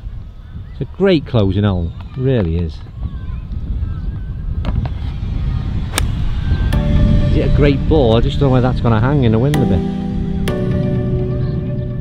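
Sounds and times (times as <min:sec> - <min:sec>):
wind buffeting microphone: 0:00.0 - 0:12.0
golf club striking ball: 0:05.9 - 0:06.9.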